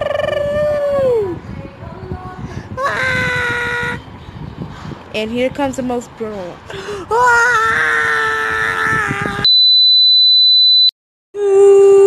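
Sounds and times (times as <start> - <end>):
high test tone: 9.4 - 10.9.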